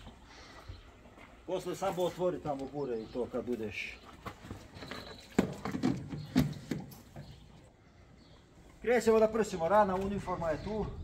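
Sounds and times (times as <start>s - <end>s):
knocks and clunks: 4.5s - 7.4s.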